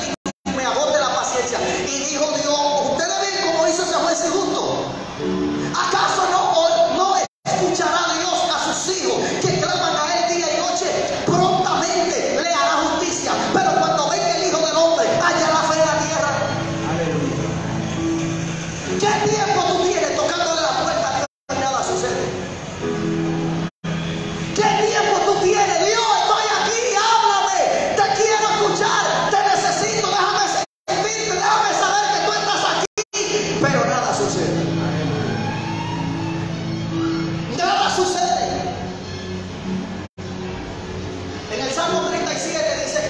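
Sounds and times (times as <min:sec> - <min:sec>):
electronic keyboard chords: 0:10.9 - 0:21.3, 0:21.9 - 0:26.8, 0:33.4 - 0:43.0.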